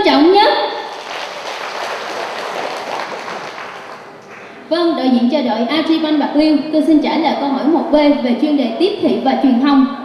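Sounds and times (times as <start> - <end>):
audience applause: 0.9 - 4.6.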